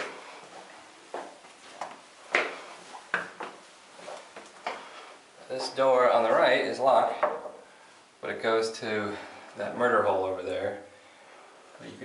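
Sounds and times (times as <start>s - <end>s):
footsteps on stone stairs: 0.0s - 5.0s.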